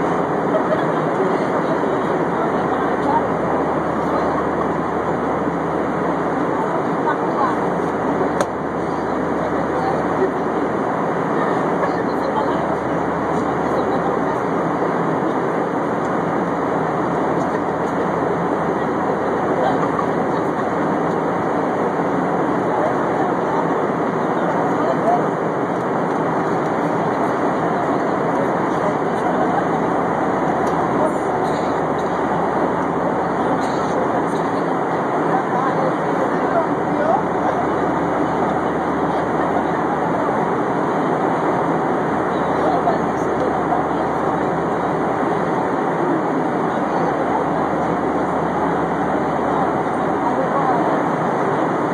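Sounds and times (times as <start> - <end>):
airplane cabin noise: 0.0 - 51.9.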